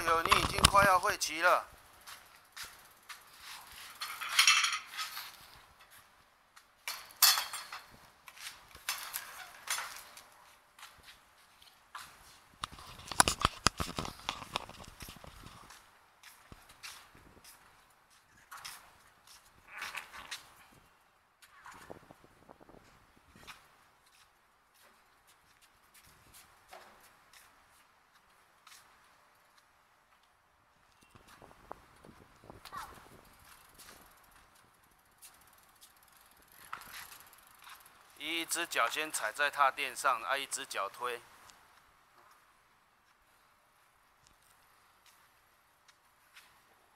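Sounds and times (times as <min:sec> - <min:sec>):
small bicycle rattling on tiles: 0:00.0 - 0:05.9, 0:06.8 - 0:10.4, 0:31.0 - 0:39.2.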